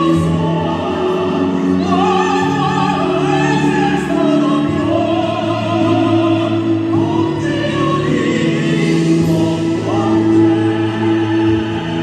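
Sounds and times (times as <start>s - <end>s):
woman and man singing opera: 0.0s - 12.0s.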